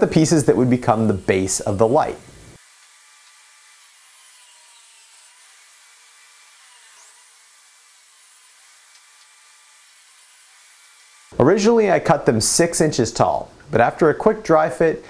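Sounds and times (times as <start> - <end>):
table saw cutting wood: 0.0 - 11.4.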